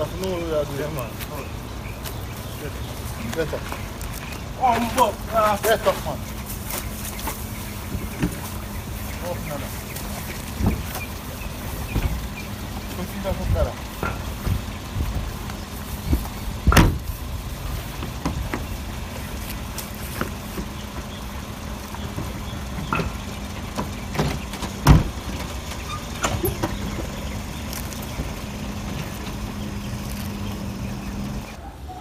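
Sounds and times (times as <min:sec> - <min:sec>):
knocks and thumps on car body: 0:16.1 - 0:17.1, 0:18.0 - 0:18.8, 0:22.0 - 0:25.5.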